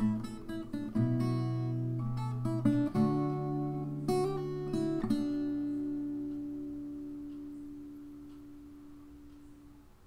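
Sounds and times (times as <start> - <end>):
acoustic guitar chord ringing: 0.0 - 9.3.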